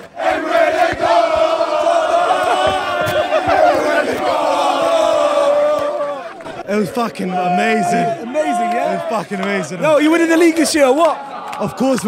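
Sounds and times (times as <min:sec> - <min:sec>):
crowd chanting: 0:00.0 - 0:11.6.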